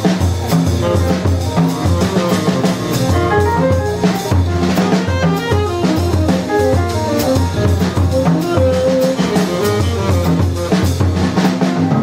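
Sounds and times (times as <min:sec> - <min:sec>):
double bass notes: 0:00.0 - 0:11.5
piano: 0:00.0 - 0:12.0
tenor saxophone: 0:00.5 - 0:12.0.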